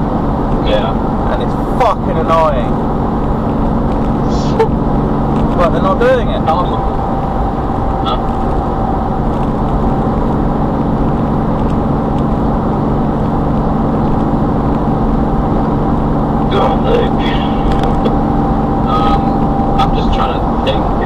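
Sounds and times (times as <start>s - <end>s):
car cabin road drone: 0.0s - 21.0s.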